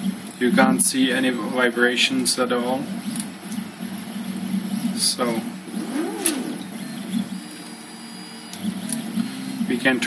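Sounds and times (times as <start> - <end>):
stepper motors whining: 5.3 - 9.0.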